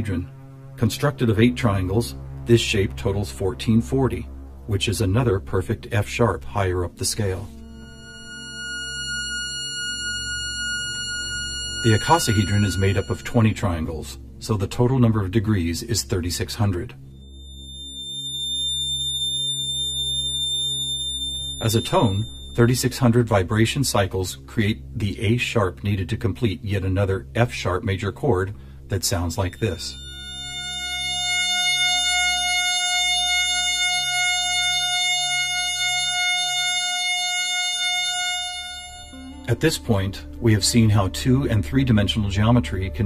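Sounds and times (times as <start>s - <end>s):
low pulsing hum: 0.0s - 23.8s, 24.4s - 43.0s
high-pitched test tone: 7.1s - 14.0s, 17.1s - 23.0s, 29.1s - 43.0s.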